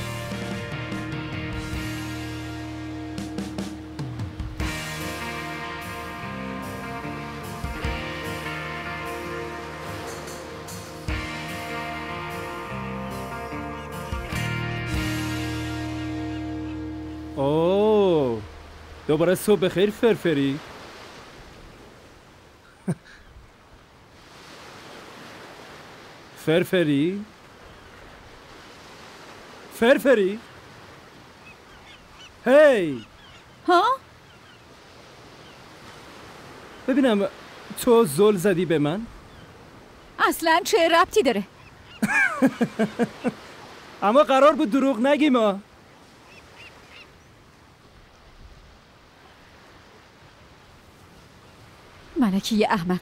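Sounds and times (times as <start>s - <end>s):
surf washing onto beach: 14.1s - 31.8s, 34.7s - 41.3s, 42.0s - 52.5s.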